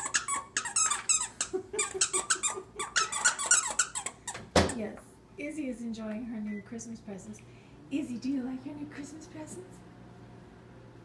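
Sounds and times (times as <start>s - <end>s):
squeaky dog toy squeaking: 0.0s - 4.8s.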